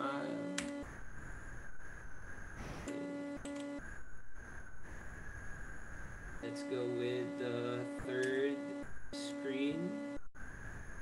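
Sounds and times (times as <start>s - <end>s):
faint high whines: 0.0s - 11.0s.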